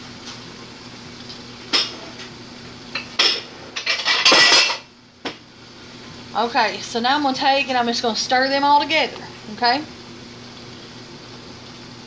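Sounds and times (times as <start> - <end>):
kitchen utensils clinking: 3.0 - 4.9
utensils clattering: 3.0 - 4.9.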